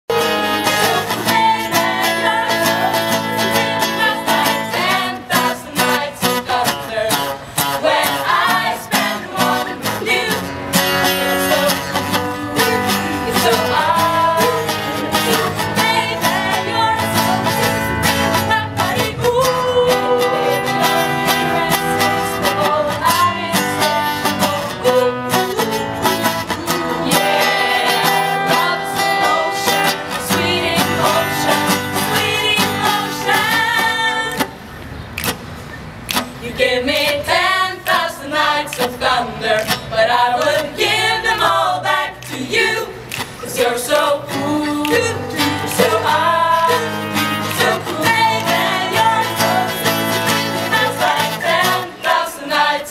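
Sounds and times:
acoustic guitar strumming: 0:00.1 - 0:34.6, 0:35.3 - 0:52.9
group of voices singing: 0:00.1 - 0:34.7, 0:36.2 - 0:52.9.

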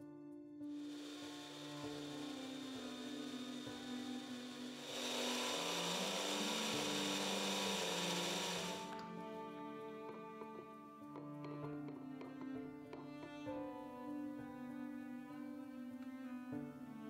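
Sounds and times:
soft background music: 0:00.0 - 0:17.0
electric grinder whirring: 0:00.7 - 0:09.1.

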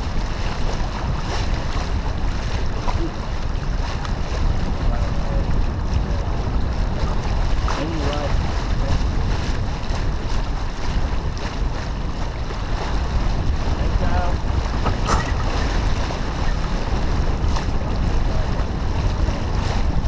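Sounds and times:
water rushing along hull: 0:00.0 - 0:20.0
wind buffeting microphone: 0:00.0 - 0:20.0.

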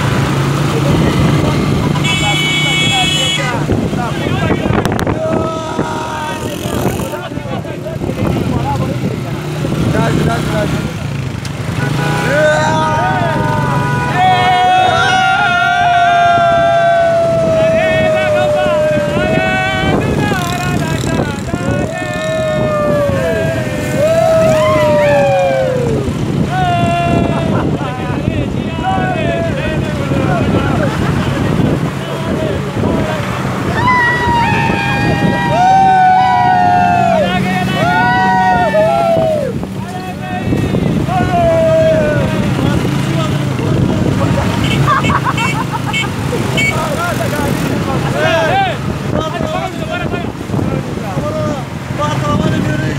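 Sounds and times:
men talking: 0:00.0 - 0:52.9
motorcycle engines running: 0:00.0 - 0:52.9
wind rush: 0:03.5 - 0:11.2, 0:12.5 - 0:45.0, 0:46.2 - 0:52.9.

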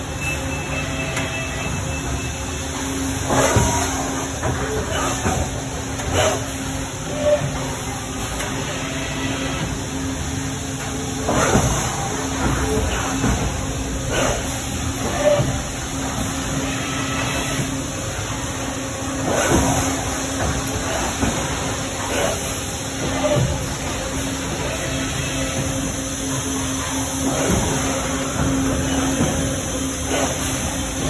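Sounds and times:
machine hum: 0:00.0 - 0:31.0
hissing clattering bursts: 0:19.2 - 0:31.0.

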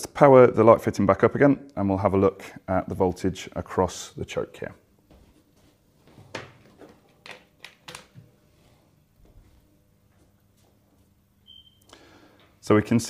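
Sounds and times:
faint mains hum: 0:00.0 - 0:13.0.

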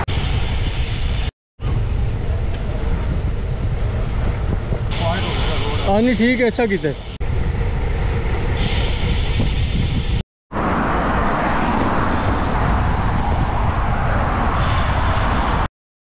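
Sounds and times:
wind noise on microphone: 0:00.0 - 0:05.9, 0:07.2 - 0:15.7
road traffic passing: 0:00.0 - 0:15.7.

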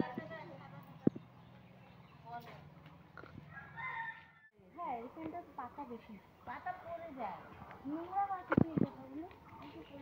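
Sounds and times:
faint rooster crow: 0:03.5 - 0:04.5.

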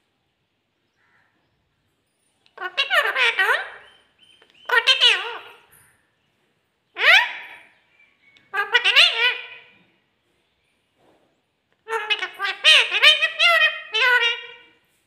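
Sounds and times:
parakeet squawky chatter: 0:02.5 - 0:05.7, 0:08.5 - 0:09.7, 0:11.9 - 0:14.7.

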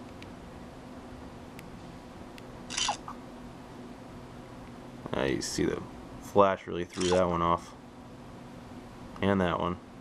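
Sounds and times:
steady low hum: 0:00.0 - 0:10.0
phone camera shutter: 0:02.7 - 0:03.1, 0:06.9 - 0:07.2.

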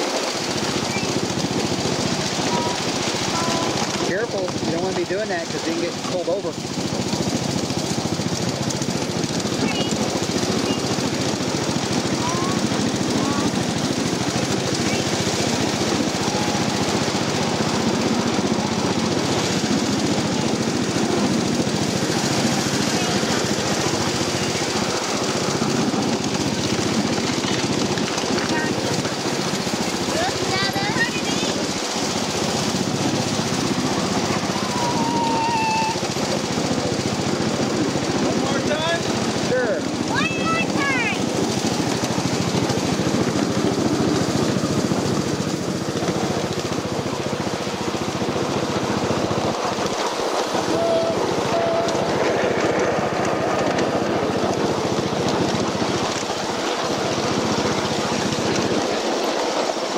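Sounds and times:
miniature train rattling on track: 0:00.0 - 0:59.9.

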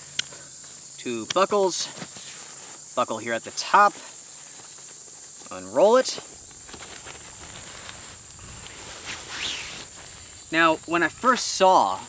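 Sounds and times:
high-pitched insect drone: 0:00.0 - 0:12.0
fabric rustling: 0:06.1 - 0:10.4.

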